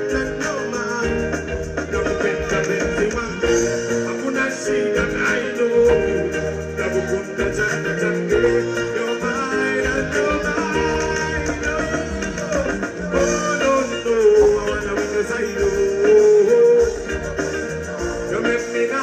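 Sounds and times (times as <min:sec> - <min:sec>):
backing music with bass line: 0:00.0 - 0:19.0
man singing into microphone: 0:00.0 - 0:19.0.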